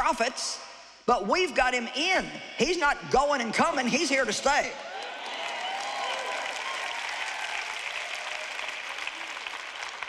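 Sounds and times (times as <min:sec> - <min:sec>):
large audience applauding: 0:04.8 - 0:10.0.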